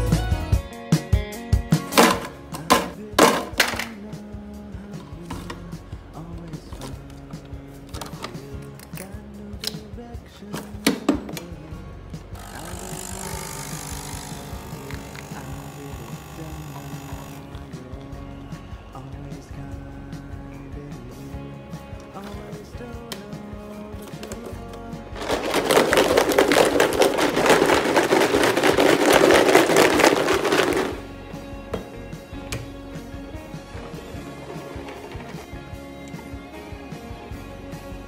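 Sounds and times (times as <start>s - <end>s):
coffee machine pump running: 12.4s - 17.5s
liquid sloshing in shaken bottle: 25.2s - 31.0s.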